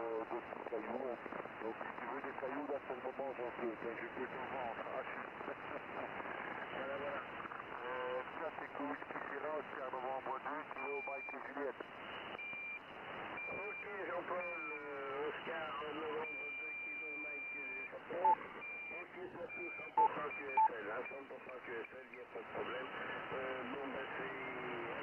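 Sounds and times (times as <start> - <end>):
voice over radio speaker: 0.0 - 7.2, 7.8 - 11.8, 13.5 - 25.0.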